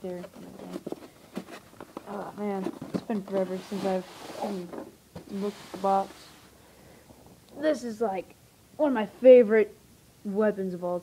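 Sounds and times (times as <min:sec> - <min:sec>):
person speaking: 0:00.0 - 0:01.1, 0:02.0 - 0:06.4, 0:07.5 - 0:11.0.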